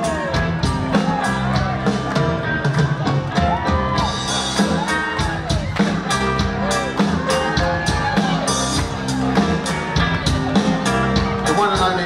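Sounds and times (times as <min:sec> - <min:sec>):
drum kit beat: 0:00.0 - 0:12.0
electric bass: 0:00.0 - 0:12.0
live rock band playing: 0:00.0 - 0:12.0.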